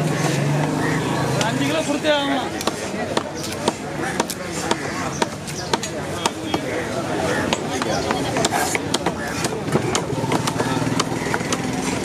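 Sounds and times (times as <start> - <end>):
fish market chatter: 0.0 - 12.0
cleaver chopping on wooden block: 2.6 - 6.7, 7.5 - 11.8.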